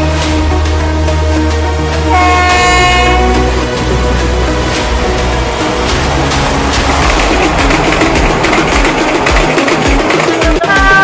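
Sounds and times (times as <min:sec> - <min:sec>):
background music with bass: 0:00.0 - 0:11.0
train horn blast: 0:01.9 - 0:06.2.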